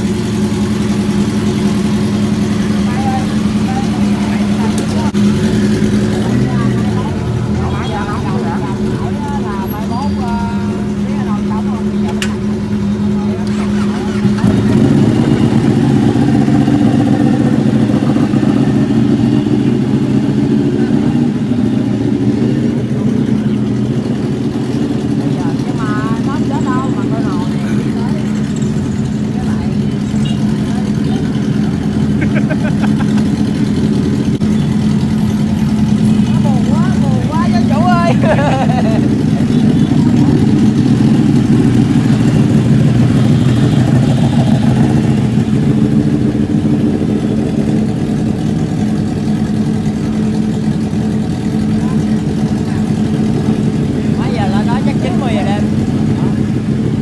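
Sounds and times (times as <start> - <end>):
motorcycle engines idling: 0.0 - 57.0.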